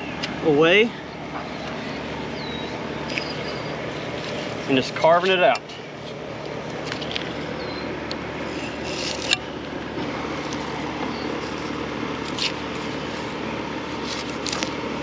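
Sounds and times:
steady background hum: 0.0s - 15.0s
knife scraping and slicing meat: 8.4s - 9.4s, 10.3s - 14.8s.

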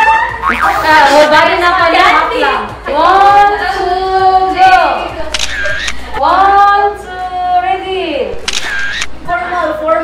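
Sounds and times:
sharp click: 8.4s - 9.1s.

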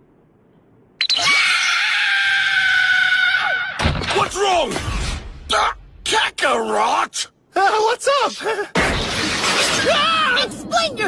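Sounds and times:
loud shattering crash: 8.8s - 10.1s.

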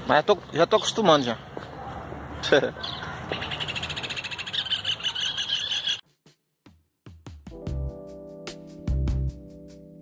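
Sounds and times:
bird chirping rapidly: 2.8s - 6.0s.

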